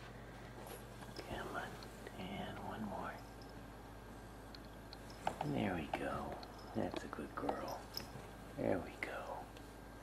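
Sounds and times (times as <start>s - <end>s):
person whispering: 1.2s - 3.2s, 5.4s - 7.9s, 8.6s - 9.6s.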